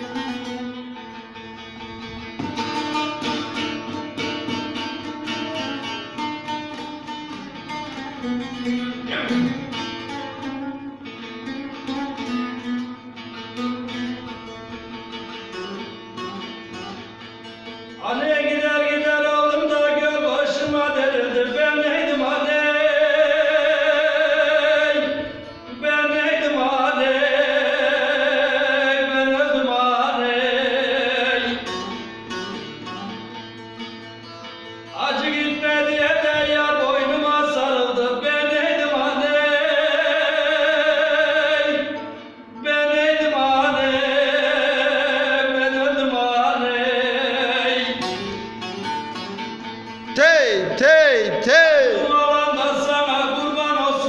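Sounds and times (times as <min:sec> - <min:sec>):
long-necked lute strumming: 0:00.0 - 0:54.0
man singing folk song: 0:17.9 - 0:32.7, 0:34.6 - 0:48.8, 0:50.1 - 0:54.0.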